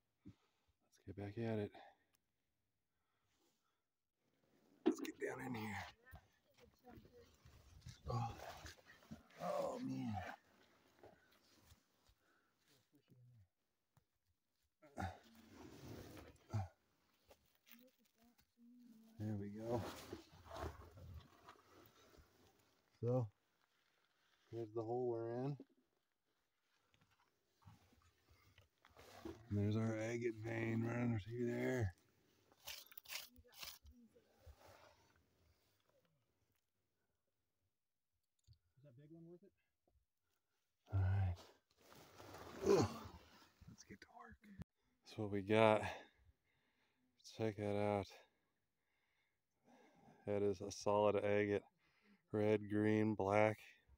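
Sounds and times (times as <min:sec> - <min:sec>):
faint low voice: 0:04.9 - 0:08.7, 0:40.9 - 0:41.5
rustling and scraping in dirt: 0:06.6 - 0:12.8, 0:15.0 - 0:24.6, 0:26.6 - 0:35.8, 0:41.6 - 0:43.9
man grunting with effort: 0:42.6 - 0:43.1.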